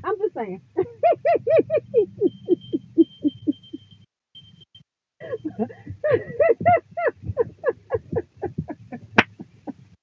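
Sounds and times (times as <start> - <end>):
faint steady high tone: 0.6 - 8.7
woman laughing hard: 0.8 - 3.8, 5.2 - 10.0.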